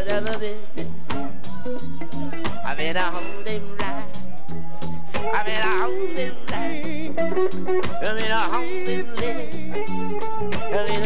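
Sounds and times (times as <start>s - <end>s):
live band with bass and drums: 0.0s - 11.0s
man singing high note: 2.6s - 4.2s, 5.2s - 10.0s, 10.6s - 11.0s.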